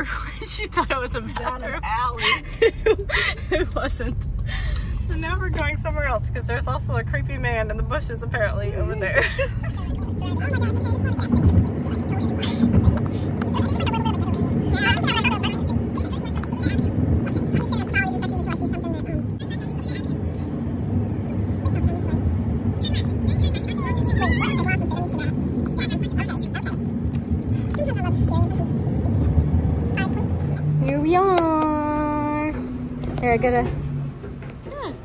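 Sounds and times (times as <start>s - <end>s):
road and engine rumble in car: 0.0s - 35.0s.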